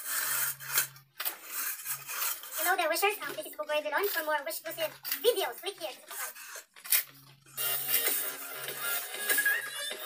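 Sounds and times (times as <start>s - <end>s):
person speaking: 2.5s - 6.4s.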